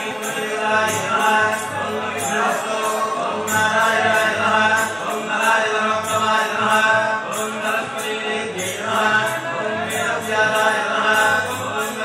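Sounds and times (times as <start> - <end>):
melodic mantra chanting: 0.0 - 12.0.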